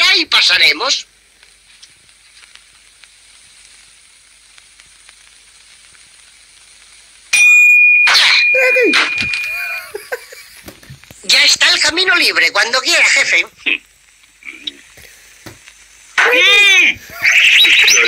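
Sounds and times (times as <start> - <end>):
crackling soundtrack hiss: 0.0 - 18.0
cartoon whistle sound effect: 8.1 - 9.9.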